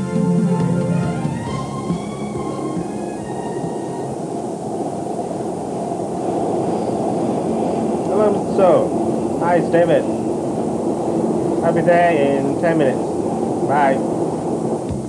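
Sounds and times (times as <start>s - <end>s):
background music: 0.0s - 4.2s
train rumble inside carriage: 0.0s - 15.0s
man speaking: 8.1s - 10.1s, 11.6s - 13.1s, 13.7s - 14.1s.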